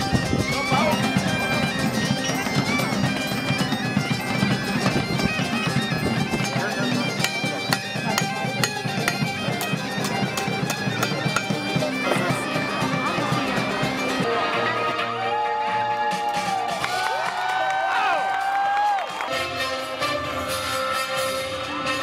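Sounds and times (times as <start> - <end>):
bagpipe music: 0.0 - 16.2, 18.9 - 22.0.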